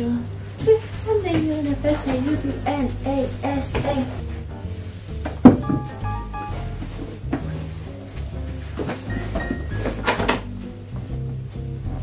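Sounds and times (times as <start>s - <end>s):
background music with low notes: 0.0s - 12.0s.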